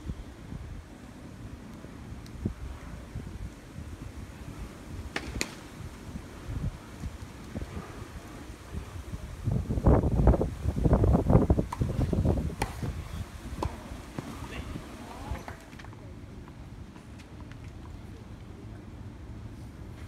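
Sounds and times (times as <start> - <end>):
wind buffeting microphone: 0.0 - 15.7
tennis ball bouncing on court: 12.6 - 13.0, 13.6 - 14.3.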